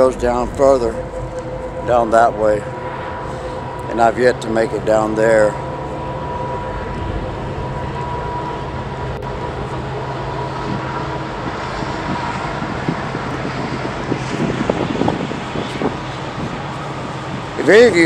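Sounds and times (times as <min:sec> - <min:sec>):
train rumbling by: 0:00.0 - 0:18.0.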